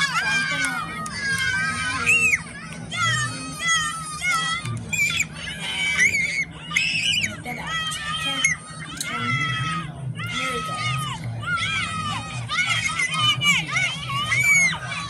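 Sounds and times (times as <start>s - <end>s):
children screaming and shouting: 0.0s - 15.0s.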